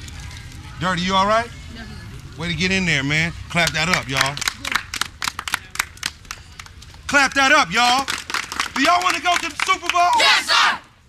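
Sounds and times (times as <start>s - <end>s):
people clapping hands: 3.5s - 10.5s.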